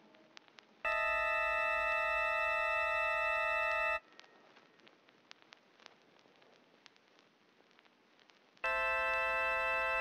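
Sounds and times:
faint clicks: 4.0 - 8.7.

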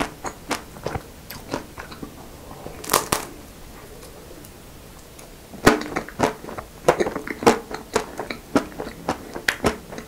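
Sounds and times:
chewing ice cream bar: 0.0 - 2.2, 5.7 - 10.0
chocolate shell cracking: 2.8 - 3.3.

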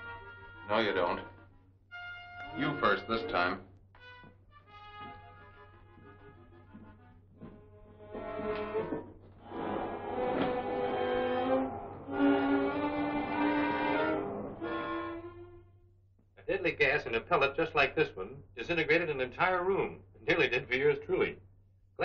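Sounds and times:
orchestral strings music: 0.0 - 8.7, 9.9 - 15.8.

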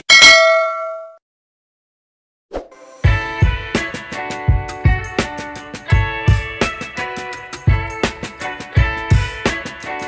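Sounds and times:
bright bell ding: 0.1 - 1.2.

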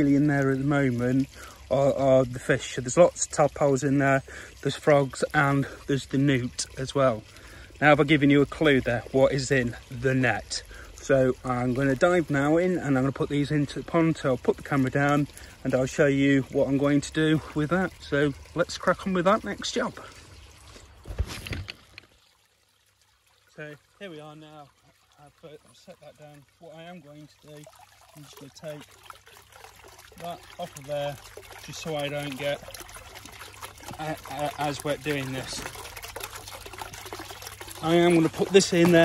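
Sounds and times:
small fountain trickling: 0.0 - 39.0
camera handling rustle and bumps: 21.0 - 22.0.

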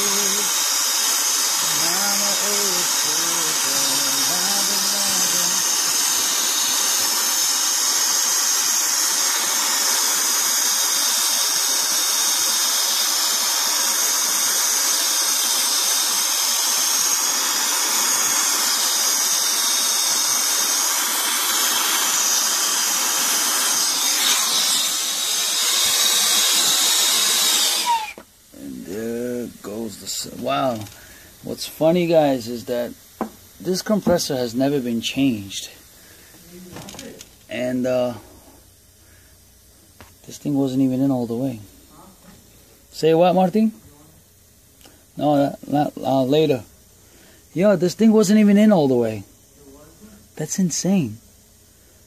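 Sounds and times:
torch flame hissing: 0.0 - 43.7.

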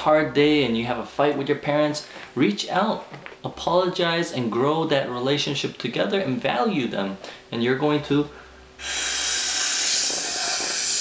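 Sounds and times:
person blowing into a ball: 8.8 - 11.0.

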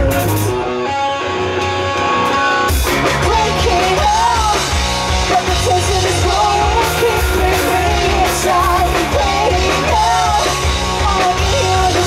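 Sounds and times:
electric guitar chords ringing: 0.0 - 12.0
pop-punk band playing live: 0.0 - 12.0.

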